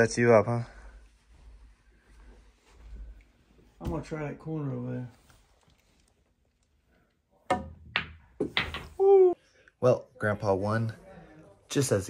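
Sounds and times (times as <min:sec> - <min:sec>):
ball hitting ball: 0:07.5 - 0:09.0.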